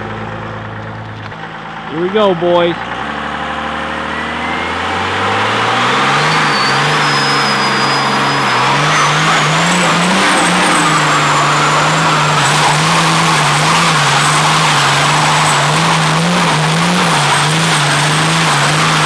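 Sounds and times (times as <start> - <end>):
diesel engine revving hard: 0.0 - 19.0
tires spinning on pavement: 0.0 - 19.0
turbo whistle rising: 4.0 - 19.0.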